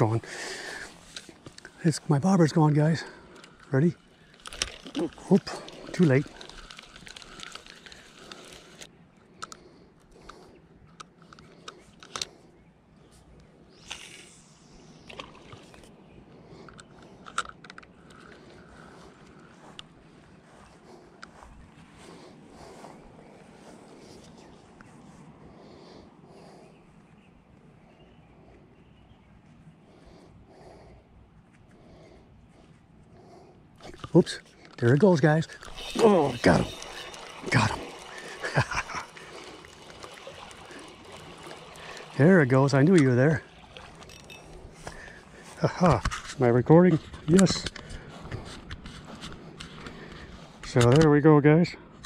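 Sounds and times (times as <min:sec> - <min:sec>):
faint outdoor background: 0:00.0 - 0:52.0
clicks and knocks from reel and rod: 0:00.7 - 0:12.5, 0:13.8 - 0:16.0, 0:16.6 - 0:20.0, 0:33.8 - 0:51.1
spinning reel winding: 0:03.4 - 0:08.9, 0:33.9 - 0:44.6.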